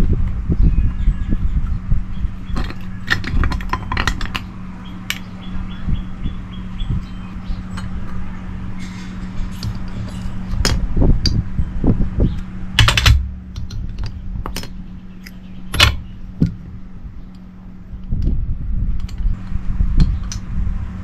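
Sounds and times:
steady low hum: 0.0s - 21.0s
metal tools clinking: 8.8s - 10.8s.

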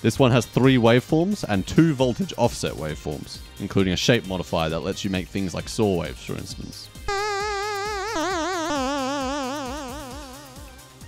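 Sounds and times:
synthesizer note with wobbling pitch: 7.1s - 10.7s.

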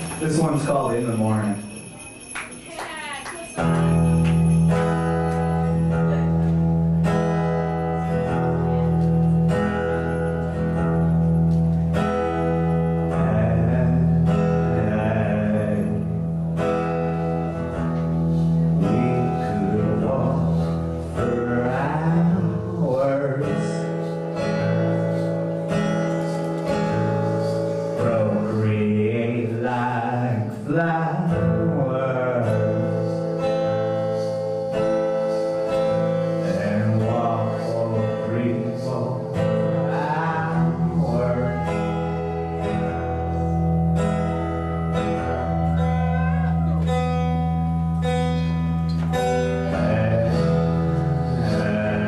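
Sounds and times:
acoustic guitar song: 0.0s - 52.0s
person singing: 26.2s - 47.0s, 49.3s - 52.0s.

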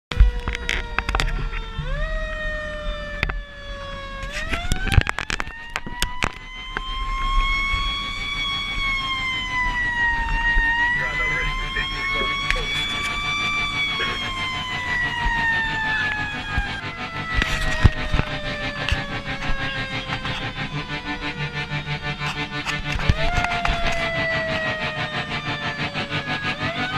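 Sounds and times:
sharp clicks and knocks: 0.1s - 1.8s, 3.2s - 3.4s, 4.2s - 6.9s, 14.6s - 21.0s, 22.1s - 24.7s
fire engine siren winding: 0.1s - 26.9s.

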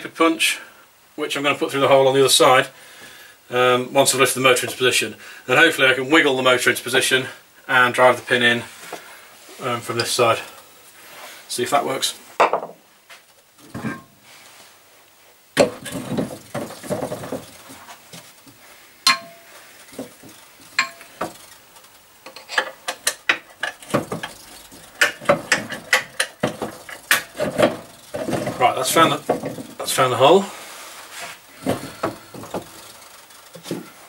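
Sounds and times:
metal clanks and clinks: 13.6s - 14.1s, 19.1s - 21.6s, 22.2s - 29.8s.

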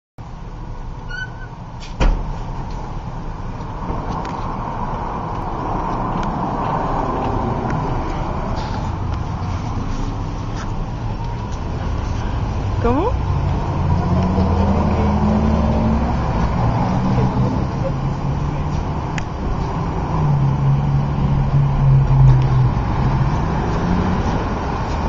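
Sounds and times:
street traffic noise: 0.2s - 25.0s
sharp thump: 1.8s - 2.5s.

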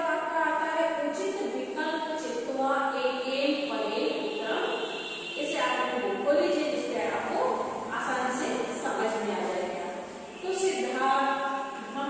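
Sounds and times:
woman talking in sing-song voice: 0.0s - 4.7s, 5.4s - 9.8s, 10.5s - 12.0s.

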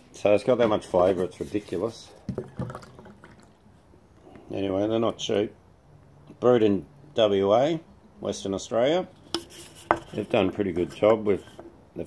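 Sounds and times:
beer pouring into glass: 2.4s - 3.6s.

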